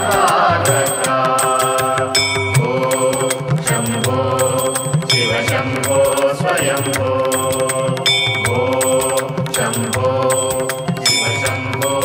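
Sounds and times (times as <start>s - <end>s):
devotional mantra chant: 0.0s - 12.0s
ringing metallic strikes: 0.0s - 12.0s.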